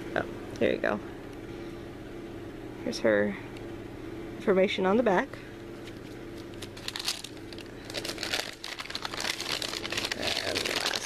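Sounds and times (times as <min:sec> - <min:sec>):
packaging crinkling: 0:05.8 - 0:11.0.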